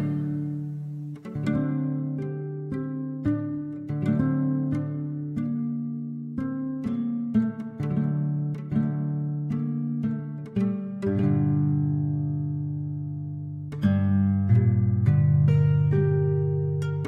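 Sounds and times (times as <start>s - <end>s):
plucked harp guitar notes: 0.0s - 17.0s.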